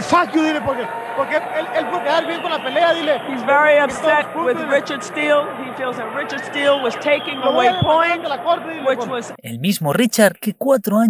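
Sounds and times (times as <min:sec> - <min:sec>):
arena crowd noise: 0:00.0 - 0:09.4
person talking: 0:09.1 - 0:11.0.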